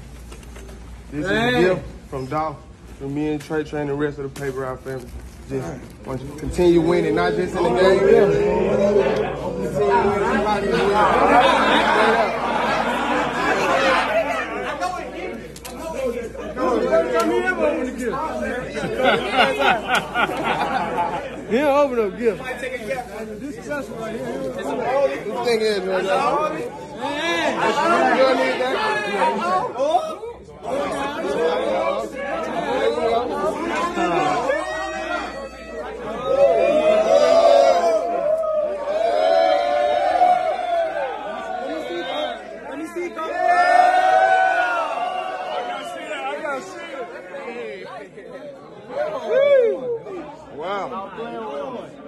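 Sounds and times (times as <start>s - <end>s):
crowd chatter: 0.0s - 52.0s.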